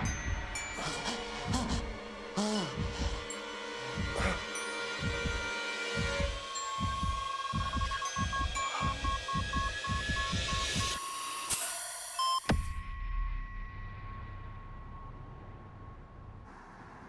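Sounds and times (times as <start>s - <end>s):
low throbbing pulse: 1.4s - 11.0s
high steady tone: 5.0s - 11.1s
repeated beeps: 6.8s - 11.0s.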